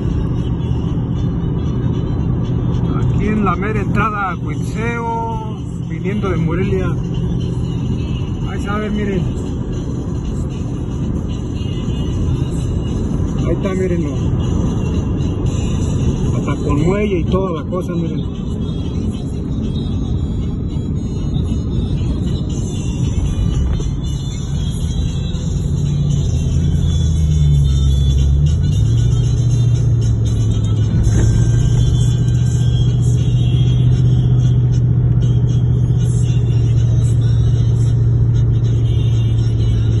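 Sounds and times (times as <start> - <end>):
car engine and road drone: 0.0 - 40.0
music playing: 0.0 - 40.0.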